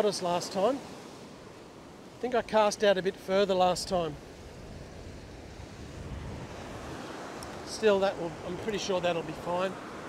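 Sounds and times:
ocean surf breaking on beach: 0.0 - 10.0.

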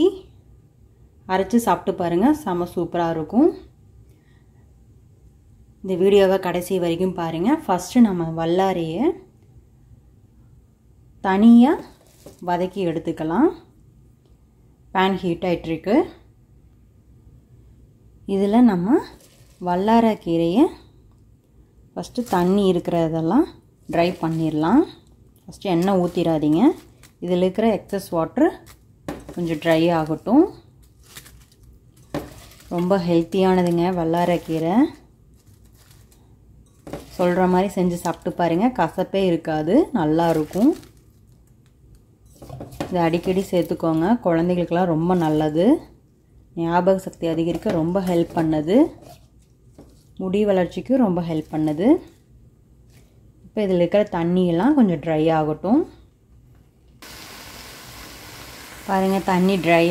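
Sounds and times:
low background noise: 0.0 - 59.9
person speaking: 18.3 - 20.8, 22.0 - 28.6, 29.3 - 30.7, 32.7 - 35.1, 37.1 - 40.8, 42.9 - 45.9, 46.6 - 49.2, 50.2 - 52.2
leaves sizzling in a pan: 57.0 - 59.9.

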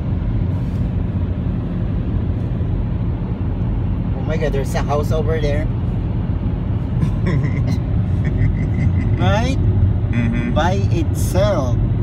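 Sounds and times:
low rumble of tyres and engine: 0.0 - 12.0.

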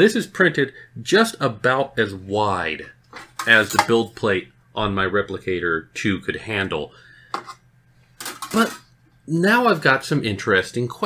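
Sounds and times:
breath: 6.9 - 7.6.

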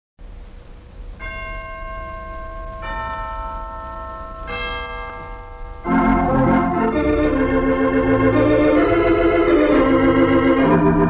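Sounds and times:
loud organ music: 5.9 - 11.0.

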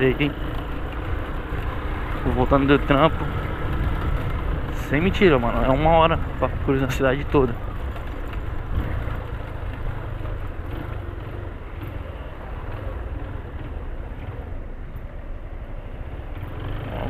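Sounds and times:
motorcycle engine low rumble: 0.0 - 17.0
traffic noise: 0.0 - 17.0.

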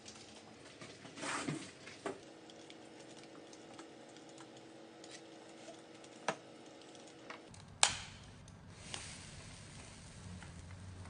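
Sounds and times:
flame burning rumble: 7.4 - 11.0.

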